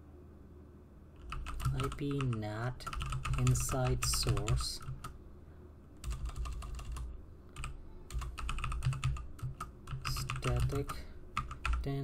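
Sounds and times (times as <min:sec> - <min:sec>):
typing on computer keyboard: 0:01.2 - 0:05.2, 0:06.0 - 0:12.0.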